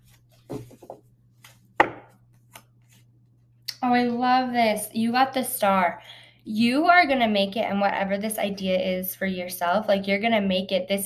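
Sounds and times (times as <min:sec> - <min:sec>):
woman speaking: 0:03.7 - 0:11.0.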